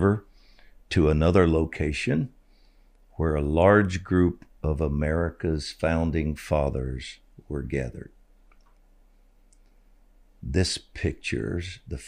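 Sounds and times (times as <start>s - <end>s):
low steady hum: 0.0s - 12.0s
faint small clicks: 8.4s - 9.8s.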